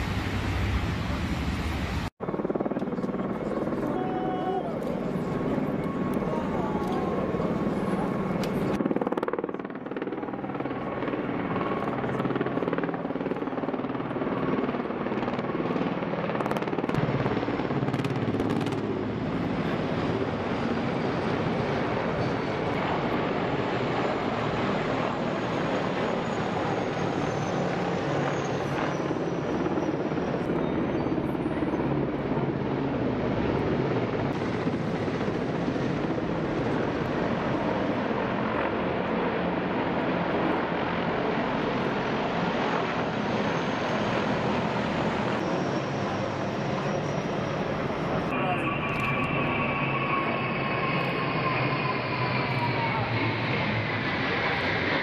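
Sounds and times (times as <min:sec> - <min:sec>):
helicopter blade chop and turbine: 0:00.0 - 0:04.1, 0:04.7 - 0:55.0
faint high turbine whine: 0:00.0 - 0:55.0.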